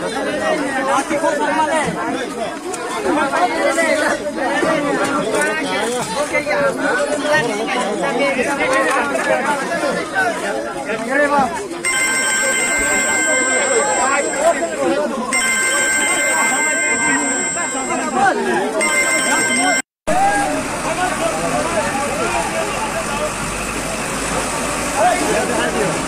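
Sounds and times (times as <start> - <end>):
crowd shouting and talking: 0.0 - 26.0
electronic ringing tone: 11.8 - 20.0.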